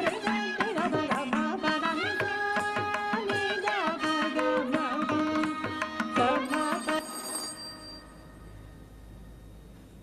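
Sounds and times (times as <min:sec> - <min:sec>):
carnatic music: 0:00.0 - 0:09.7
metallic bell-like ring: 0:06.4 - 0:09.2
low steady hum: 0:07.1 - 0:10.0.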